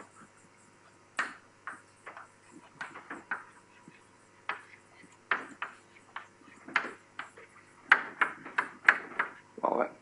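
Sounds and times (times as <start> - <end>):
chalk tapping on blackboard: 0.0 - 0.4, 1.1 - 9.4.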